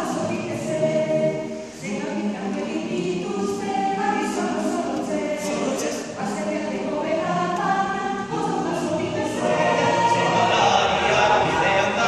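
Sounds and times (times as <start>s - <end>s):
mixed choir singing in harmony: 0.0s - 12.0s.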